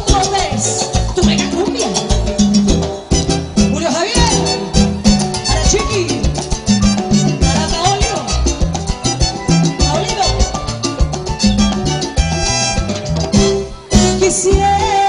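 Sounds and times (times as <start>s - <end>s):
bass and drum beat: 0.0s - 15.0s
latin cumbia band music: 0.0s - 15.0s.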